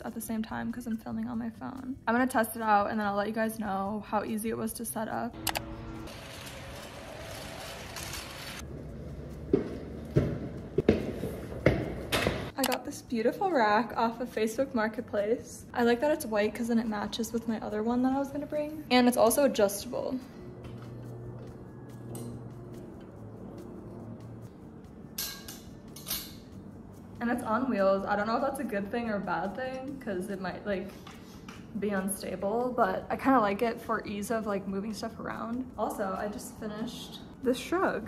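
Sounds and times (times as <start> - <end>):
soft background music: 0.0 - 38.0
metal clothing rack scraping: 5.6 - 8.6.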